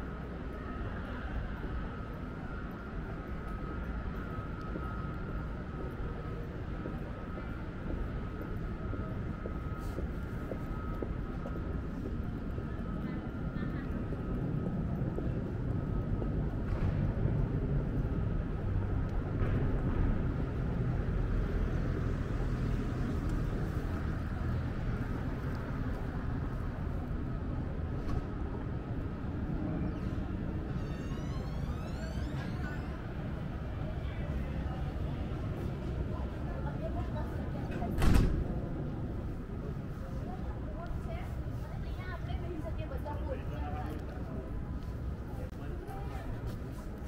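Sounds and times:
steady high whine: 0.0 - 37.7
road traffic rumble: 0.0 - 47.0.

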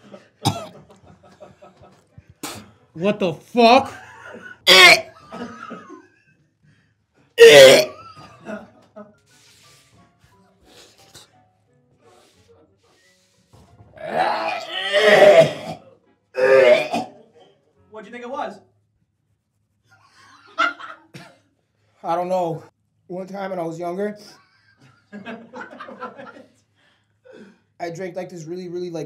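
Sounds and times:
man gagging cough: 0.4 - 0.7, 3.8 - 5.6, 7.4 - 8.2, 14.4 - 15.8, 16.4 - 17.2.

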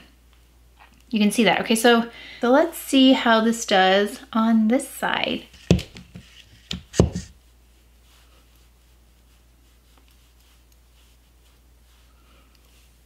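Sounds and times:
fingertips rubbing skin: 6.1 - 13.0.

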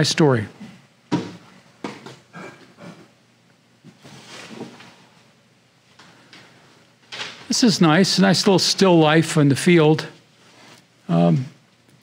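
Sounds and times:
mat board scraping: 3.9 - 5.0.

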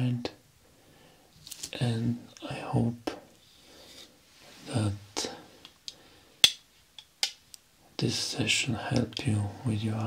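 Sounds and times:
eyeglasses clicking on table: 6.4 - 7.4.

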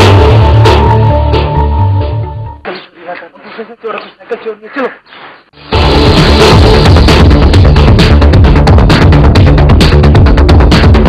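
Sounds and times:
music with pulsing bass beat: 0.0 - 2.4, 5.6 - 11.0.

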